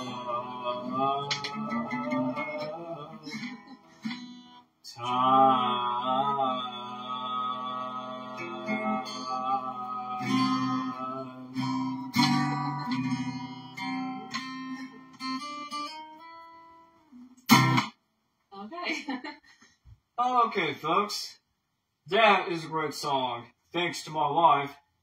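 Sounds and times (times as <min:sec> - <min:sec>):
acoustic guitar strums: 0:00.0 - 0:05.8, 0:08.1 - 0:16.3, 0:17.4 - 0:18.0.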